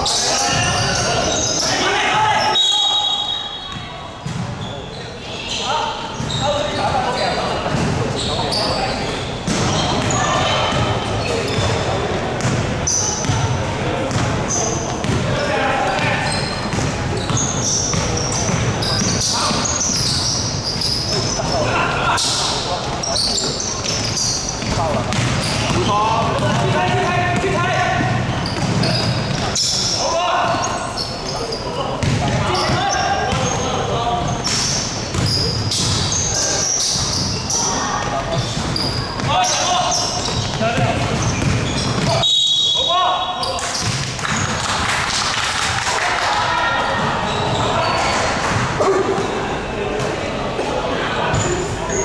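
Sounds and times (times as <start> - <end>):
players calling out: 0.0 - 44.6
basketball bouncing on wooden floor: 15.0 - 15.3, 23.8 - 29.4, 32.0 - 32.8, 40.3 - 42.2, 43.8 - 44.5.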